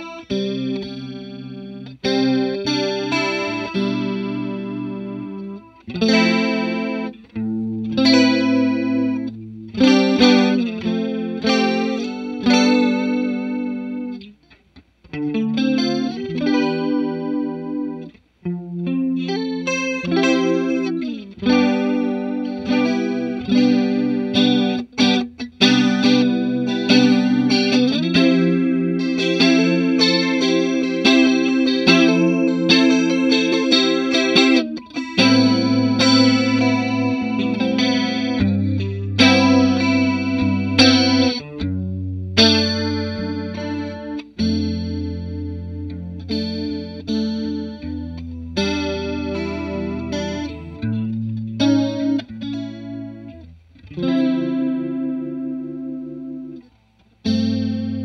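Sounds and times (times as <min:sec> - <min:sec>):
clean electric guitar with chorus: 0:00.0 - 0:58.0.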